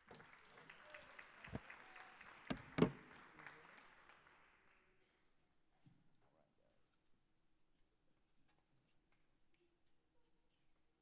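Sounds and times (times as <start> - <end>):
audience applause: 0.0 - 5.0.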